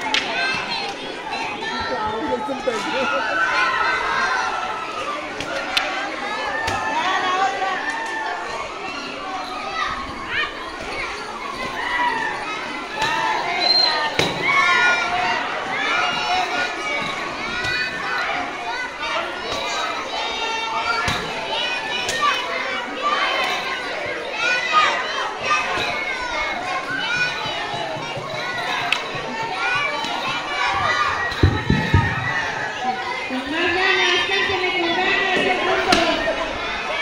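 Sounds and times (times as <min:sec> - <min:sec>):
children talking and calling out: 0:00.0 - 0:37.0.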